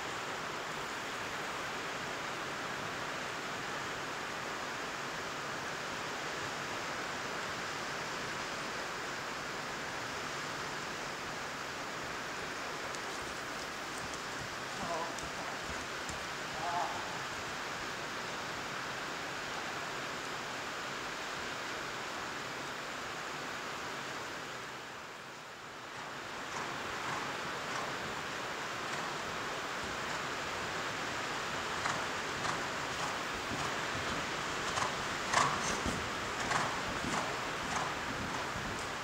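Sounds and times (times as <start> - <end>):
heavy rain on metal roof: 8.4 - 39.0.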